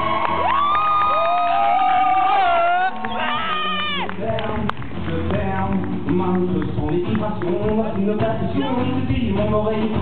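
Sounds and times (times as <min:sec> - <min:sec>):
audience whooping: 0:00.0 - 0:04.3
acoustic guitar and cajon music: 0:03.9 - 0:10.0.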